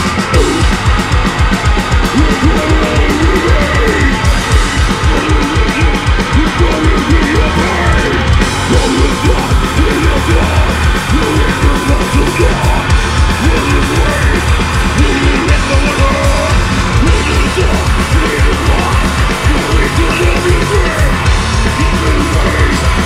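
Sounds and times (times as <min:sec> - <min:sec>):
live death metal band: 0:00.0 - 0:23.0
rapid kick drum: 0:00.0 - 0:23.0.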